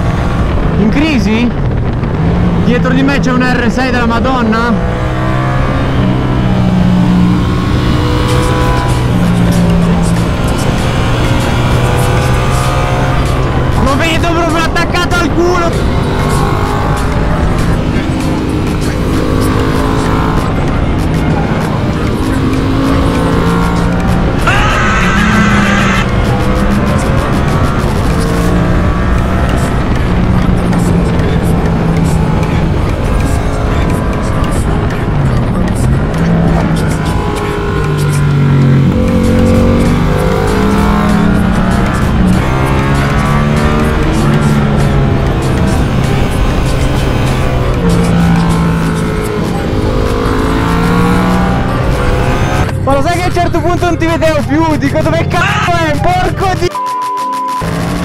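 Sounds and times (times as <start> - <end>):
wind rush: 0.0 - 13.9
motorcycle engine running hard: 0.0 - 56.6.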